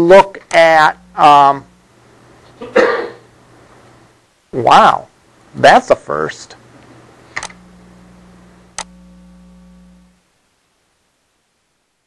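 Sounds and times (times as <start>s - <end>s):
electrical hum: 0.0s - 10.9s
sharp clicks: 7.4s - 7.6s, 8.7s - 9.0s.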